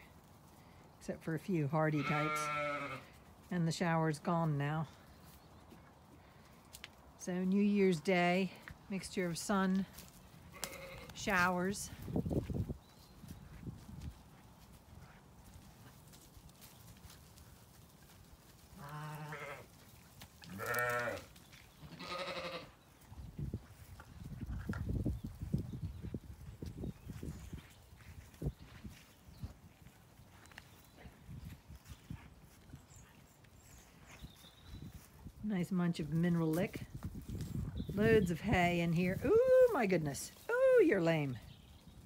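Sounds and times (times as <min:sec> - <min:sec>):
sheep bleating: 0:02.0 - 0:03.1, 0:10.5 - 0:11.1, 0:18.8 - 0:19.7, 0:20.4 - 0:22.7.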